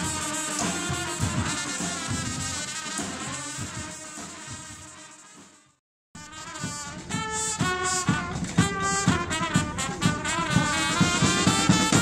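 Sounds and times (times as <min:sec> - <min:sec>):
low drum beats: 0:00.0 - 0:05.0, 0:06.2 - 0:12.0
marching band saxophones and trumpets: 0:00.0 - 0:12.0.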